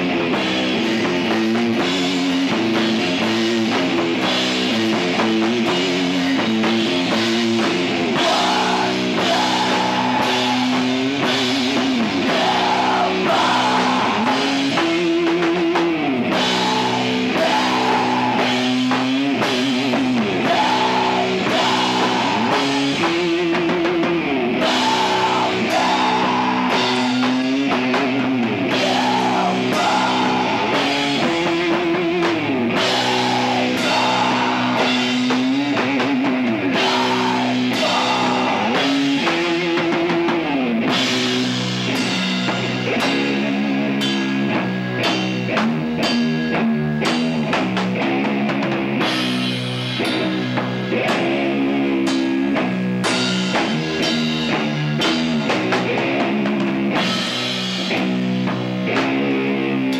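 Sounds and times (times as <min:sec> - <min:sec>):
distorted electric guitar: 0:00.0 - 0:59.9
drums: 0:00.0 - 0:59.9.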